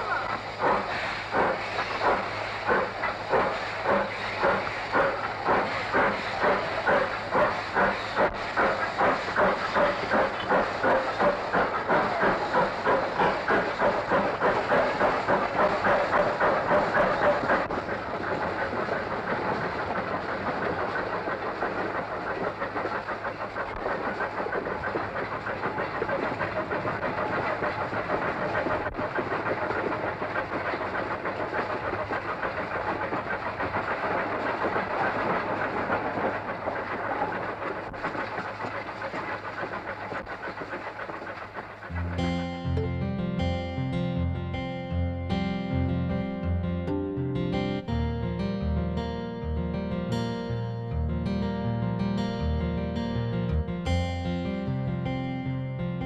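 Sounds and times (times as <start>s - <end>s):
wheels clattering on rail: 0.0s - 42.2s
steam locomotive chuffing: 0.0s - 43.9s.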